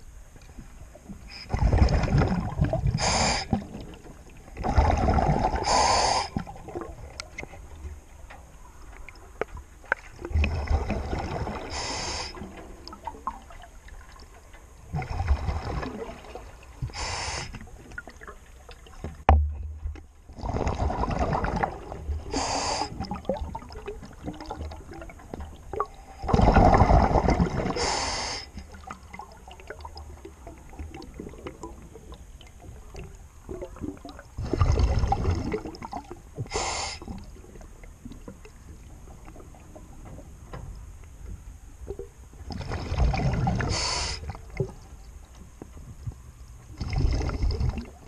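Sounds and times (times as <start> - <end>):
underwater exhaled bubbles: 1.2 - 7.8, 8.7 - 19.4, 20.3 - 40.2, 41.8 - 45.0, 46.1 - 48.0
regulator inhalation hiss: 3.0 - 3.6, 5.6 - 6.4, 11.7 - 12.4, 16.9 - 17.6, 22.3 - 23.0, 27.8 - 28.6, 36.5 - 37.1, 43.7 - 44.3
faint clicks and crackles: 6.8 - 10.7.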